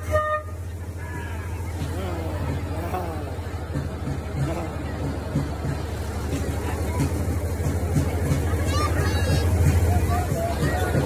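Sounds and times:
crowd chatter: 0:00.0 - 0:11.0
vehicle engine rumbling: 0:00.0 - 0:11.0.

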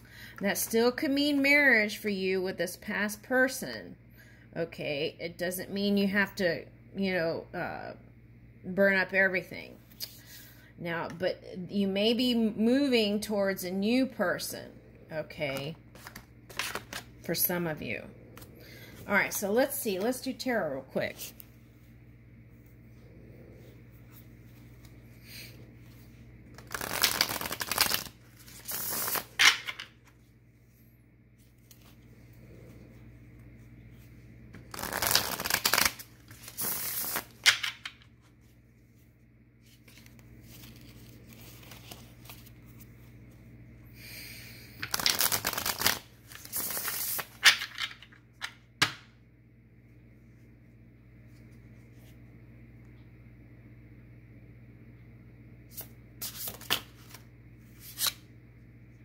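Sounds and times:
cards being shuffled by hand: 0:15.6 - 0:17.3, 0:25.8 - 0:30.3, 0:33.8 - 0:38.5, 0:39.6 - 0:43.4, 0:44.8 - 0:48.6, 0:55.7 - 0:58.2.

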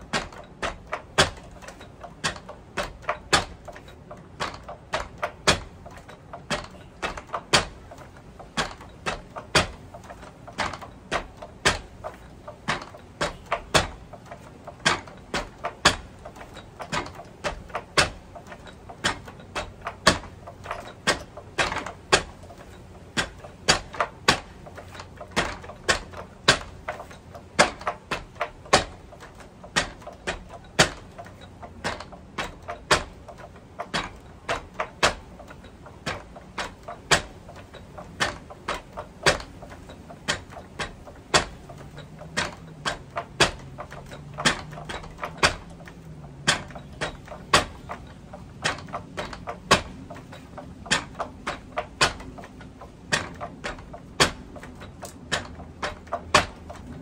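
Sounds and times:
fists knocking striking post: 0:04.4 - 0:05.8, 0:08.6 - 0:16.2, 0:16.9 - 0:31.2, 0:38.2 - 0:52.4.

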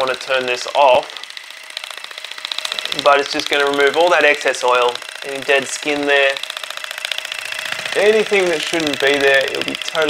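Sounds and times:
facial cleansing device buzzing: 0:00.0 - 0:10.0.

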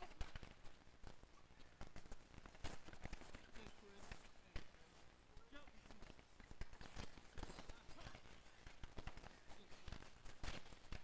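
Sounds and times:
hockey sticks clacking on ball: 0:00.0 - 0:11.0
players' voices: 0:00.0 - 0:11.0
running footsteps: 0:00.0 - 0:11.0.

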